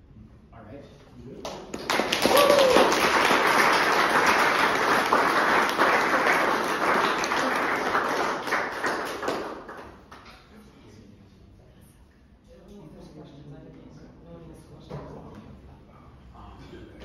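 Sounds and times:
audience applauding: 1.4 - 10.3.

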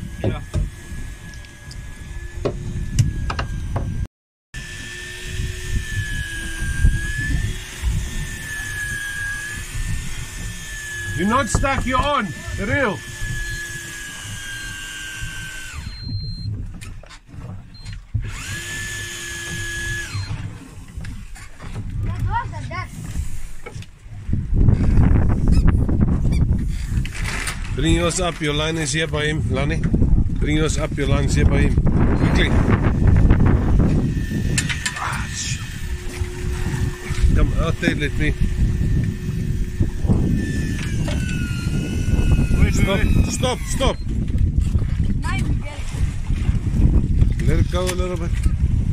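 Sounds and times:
fishing reel motor whine: 0.0 - 21.2, 24.8 - 27.3, 31.1 - 44.6
boat noise: 0.0 - 48.9
wind on microphone: 0.0 - 48.9
loud low rumbling: 29.4 - 45.9.

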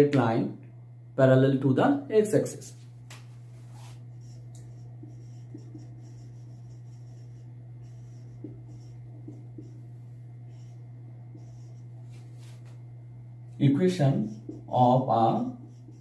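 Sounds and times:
steady low hum: 0.0 - 16.0
marker pen on whiteboard: 2.6 - 12.8, 13.9 - 16.0.

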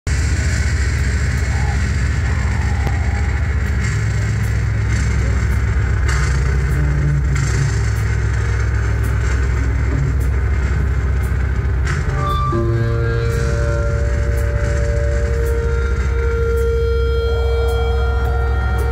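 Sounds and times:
distorted guitars and bass droning: 0.1 - 18.9
ringing guitar notes: 12.0 - 18.9.

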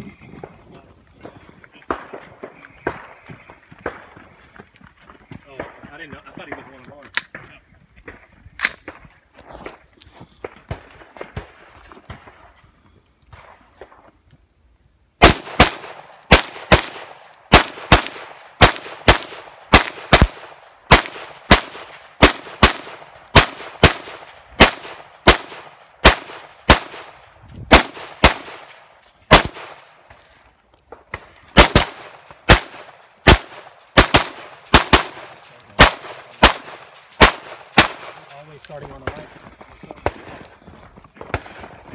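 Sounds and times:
rifle shots: 15.2 - 30.0, 30.9 - 39.4, 41.2 - 41.9.

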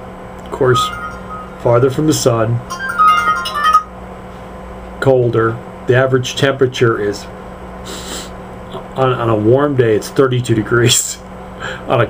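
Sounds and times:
electronic chime: 0.5 - 4.0.

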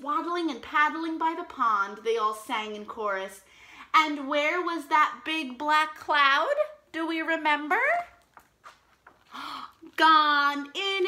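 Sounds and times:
paper page rustling: 7.9 - 10.1.

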